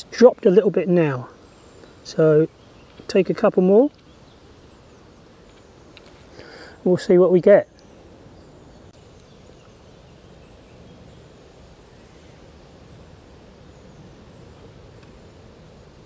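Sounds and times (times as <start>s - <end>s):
low rumble of wind: 0.0s - 16.0s.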